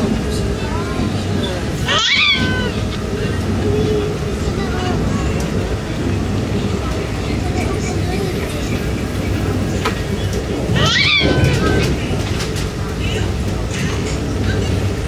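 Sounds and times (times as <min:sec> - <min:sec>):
train carriage rumble: 0:00.0 - 0:15.0.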